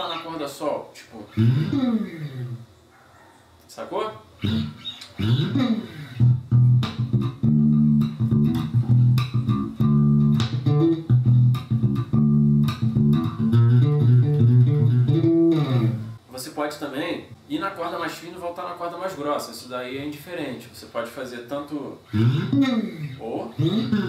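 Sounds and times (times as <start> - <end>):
electric bass plucked notes: 1.4 - 2.6, 4.4 - 16.2, 22.1 - 24.0.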